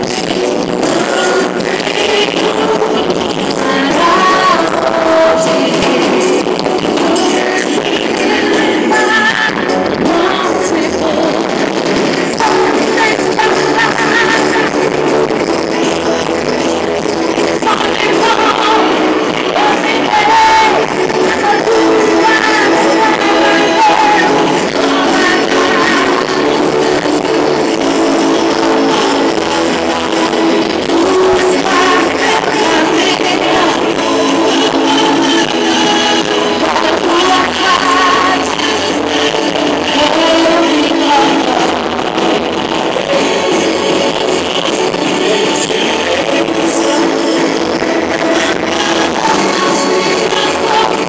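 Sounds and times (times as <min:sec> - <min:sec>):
live gospel band music: 0:00.0 - 0:51.0.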